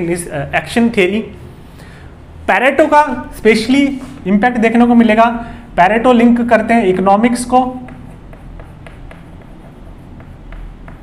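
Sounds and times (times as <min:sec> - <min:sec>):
chalk writing on chalkboard: 0:07.5 - 0:11.0.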